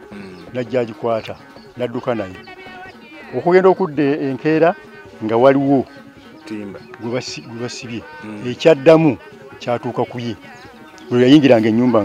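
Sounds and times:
man speaking: 0.1s - 2.4s, 3.3s - 12.0s.

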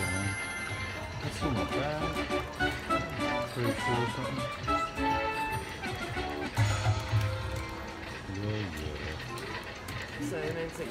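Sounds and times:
slot machine win music: 0.0s - 10.9s.

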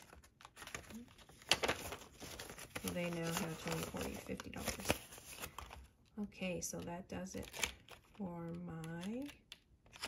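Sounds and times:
paper banknotes rustling: 0.0s - 5.8s
plastic envelope crinkling: 0.0s - 6.0s.

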